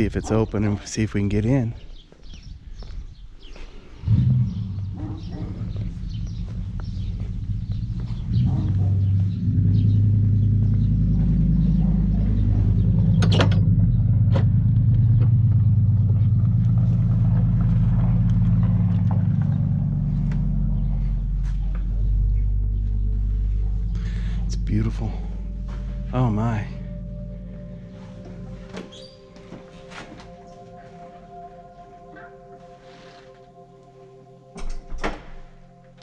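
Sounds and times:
steady low hum: 0.0 - 36.0
door latch clicking: 34.6 - 35.5.

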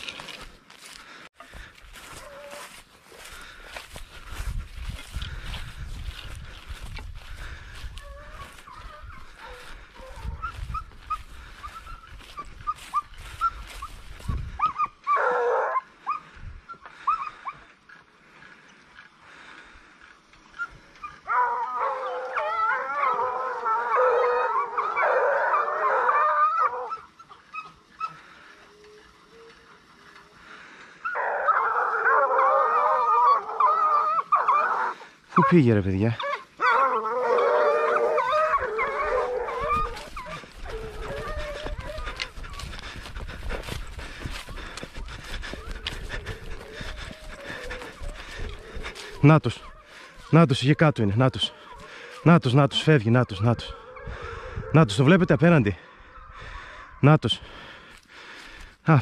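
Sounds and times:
rustling: 0.0 - 1.3
hounds baying: 1.6 - 19.7, 20.3 - 58.6.

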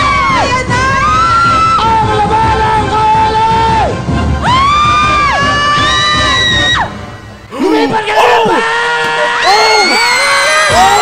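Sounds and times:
children cheering: 8.4 - 11.0.

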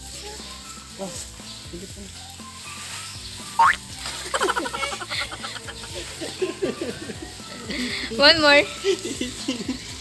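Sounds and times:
toddler squealing: 3.6 - 3.8
toddler laughing: 3.6 - 7.1.

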